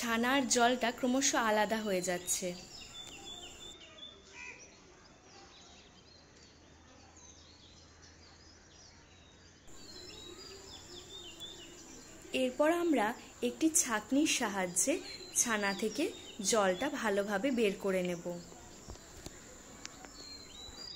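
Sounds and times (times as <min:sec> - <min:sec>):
faint birds chirping: 0:00.0 - 0:20.9.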